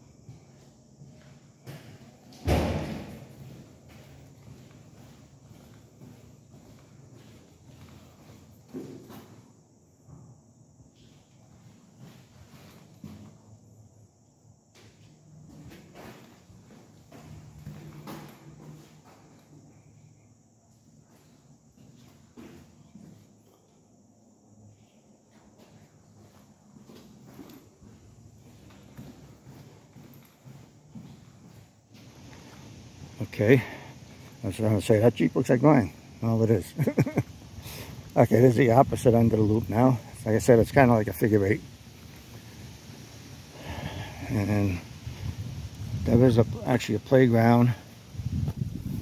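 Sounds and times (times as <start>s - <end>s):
footsteps on tiles: 3.3s - 9.2s, 20.8s - 23.4s, 25.3s - 32.9s.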